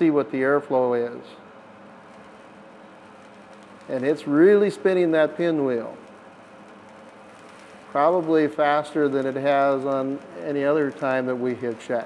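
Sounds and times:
aeration fan running: 0:00.0 - 0:12.0.

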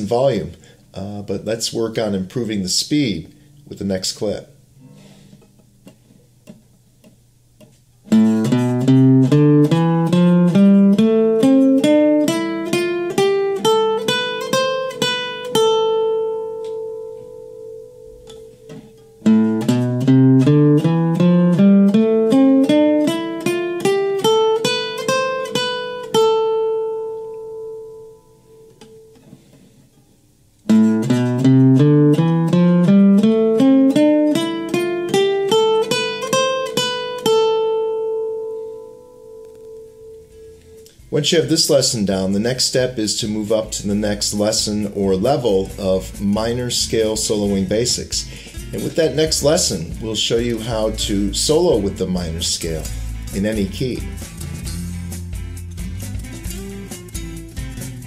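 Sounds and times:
acoustic guitar picked scale: 0:00.0 - 0:58.0.

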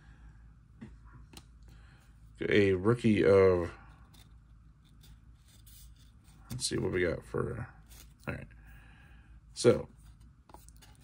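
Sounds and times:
cards rustling and sliding: 0:03.8 - 0:07.0, 0:07.8 - 0:08.4, 0:09.9 - 0:11.0.

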